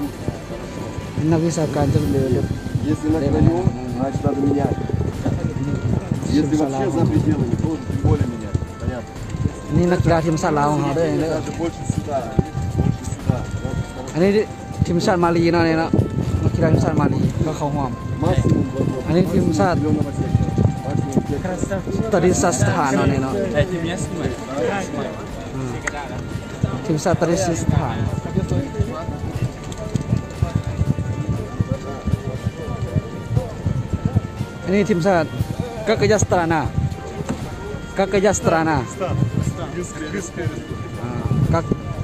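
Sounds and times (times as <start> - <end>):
background music: 0.0 - 42.0
narration: 0.0 - 42.0
voices speaking: 0.0 - 42.0.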